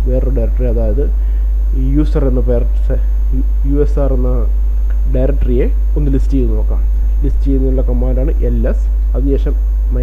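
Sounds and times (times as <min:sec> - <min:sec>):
electrical mains hum: 0:00.0 - 0:10.0
man speaking: 0:00.0 - 0:10.0.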